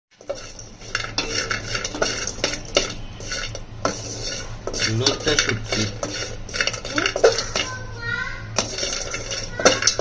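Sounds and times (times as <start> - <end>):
metal utensil clinking on cookware: 0.2 - 7.8, 8.6 - 10.0.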